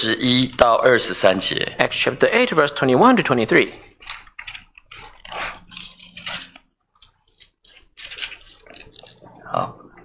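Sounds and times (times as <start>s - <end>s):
thin paper pages rustling: 4.0s - 9.2s.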